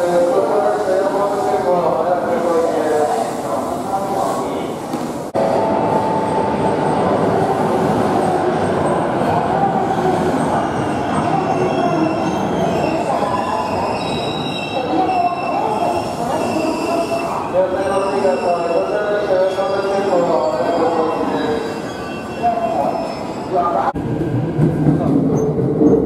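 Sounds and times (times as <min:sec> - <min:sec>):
wheels squealing on rails: 0:06.0 - 0:23.8.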